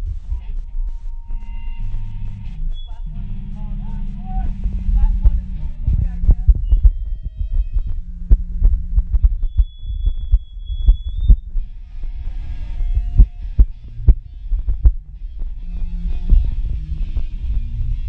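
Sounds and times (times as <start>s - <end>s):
bass guitar notes: 0.0s - 18.0s.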